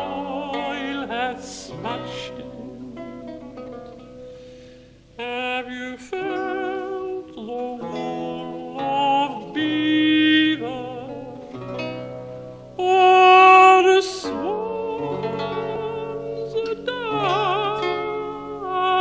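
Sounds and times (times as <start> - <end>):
countertenor singing with vibrato: 0.0 - 11.8, 12.7 - 19.0
lute playing: 0.0 - 19.0.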